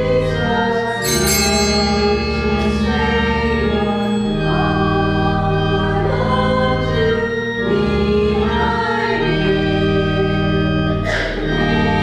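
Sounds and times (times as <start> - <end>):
choir singing a hymn: 0.0 - 12.0
organ chords: 0.0 - 12.0.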